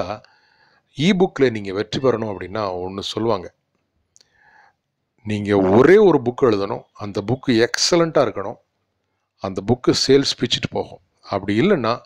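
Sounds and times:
man narrating: 1.0 - 3.5, 5.3 - 8.6.

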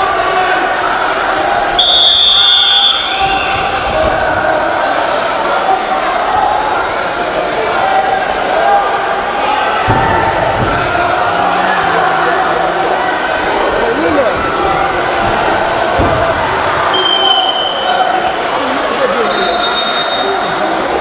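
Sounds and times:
crowd chatter in a hall: 0.0 - 21.0
referee whistle blast: 1.8 - 3.6, 16.9 - 17.9, 19.2 - 20.5
thump: 9.8 - 11.0, 15.2 - 16.5.

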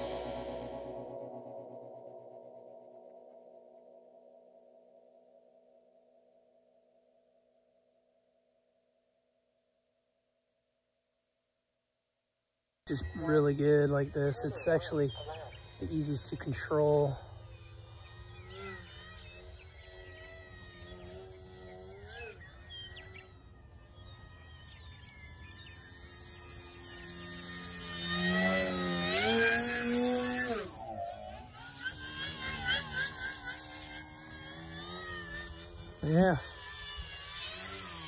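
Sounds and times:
model plane electric motor whine: 0.0 - 5.3, 12.9 - 38.0.

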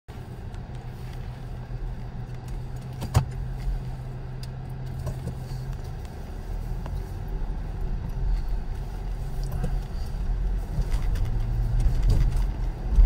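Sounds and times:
car engine hum from inside: 0.1 - 13.0.

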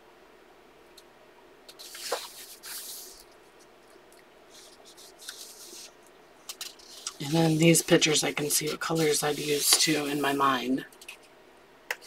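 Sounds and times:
paper page turning: 1.7 - 3.3, 4.5 - 5.9, 6.5 - 10.4.

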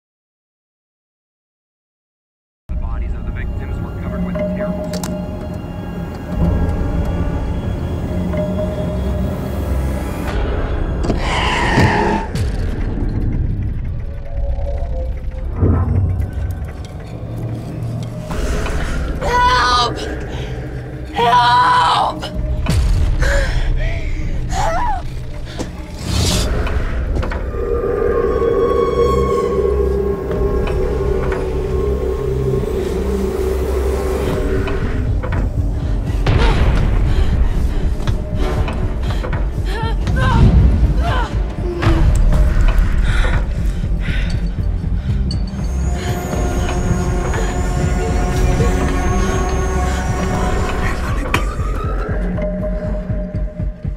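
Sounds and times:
deep rumble: 2.7 - 53.9
scraping swell: 25.9 - 35.1.

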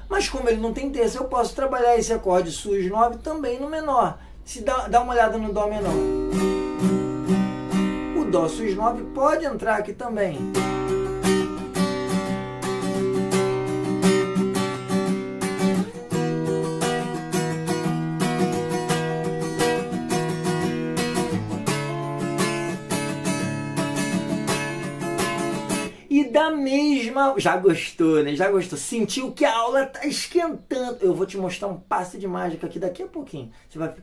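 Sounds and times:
acoustic guitar strumming: 5.0 - 26.0.

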